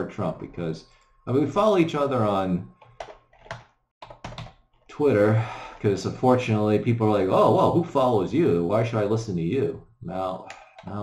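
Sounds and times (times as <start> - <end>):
typing on computer keyboard: 2.8 - 4.8.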